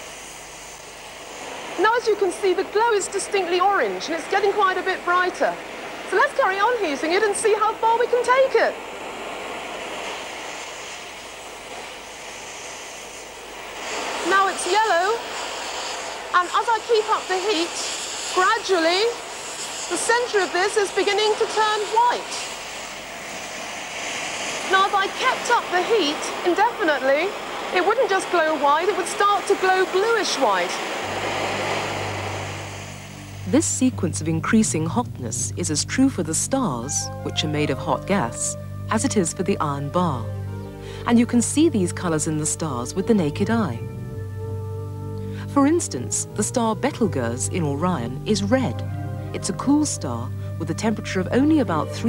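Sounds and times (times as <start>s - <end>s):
gas torch flame hissing: 0.0s - 52.0s
heating apparatus roaring: 0.0s - 52.0s
low steady hum: 0.0s - 52.0s.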